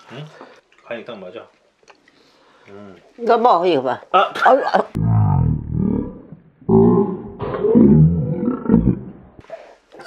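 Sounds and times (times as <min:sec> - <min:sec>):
man growling with food in mouth: 0:05.0 - 0:09.4.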